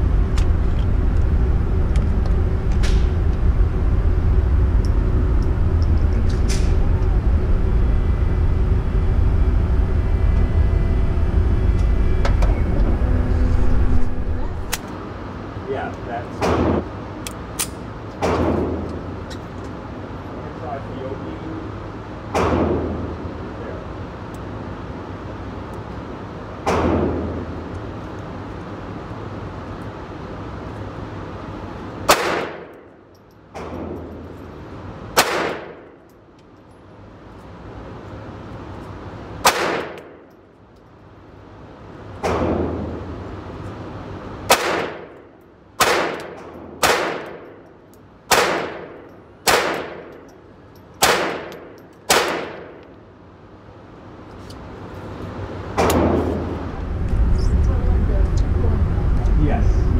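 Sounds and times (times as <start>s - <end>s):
pistol shots with ringing decay: 32.1s - 32.7s, 35.2s - 35.9s, 39.4s - 40.2s, 44.5s - 45.1s, 45.8s - 47.5s, 48.3s - 50.1s, 51.0s - 52.8s.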